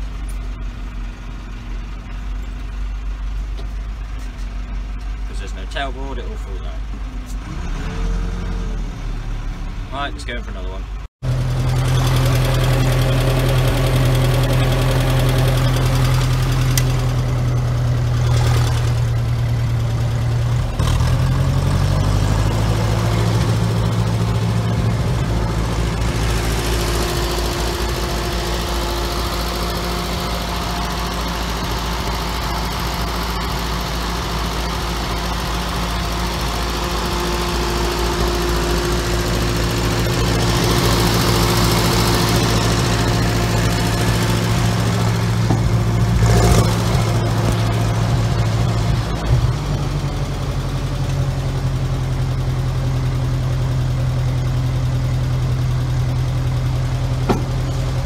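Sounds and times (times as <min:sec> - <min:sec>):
tractor engine running: 0:00.0 - 0:58.0.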